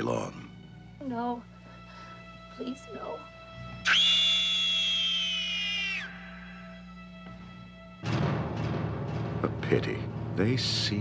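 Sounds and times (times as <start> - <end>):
woman screaming: 3.8 - 6.8.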